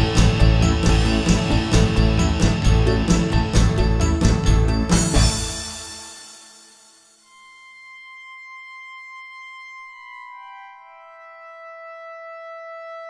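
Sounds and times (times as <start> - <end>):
sustained ambient music: 0.0 - 13.0.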